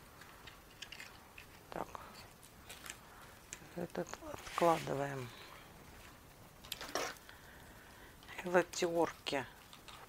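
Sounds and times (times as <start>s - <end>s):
plastic pack rustling and clicking: 0.2s - 5.0s, 6.0s - 7.4s.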